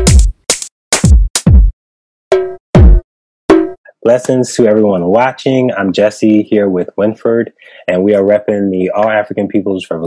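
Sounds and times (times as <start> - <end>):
cowbell-like drum machine hits: 0.0 - 1.7, 2.3 - 3.8
deep falling kick drum: 2.8 - 3.0.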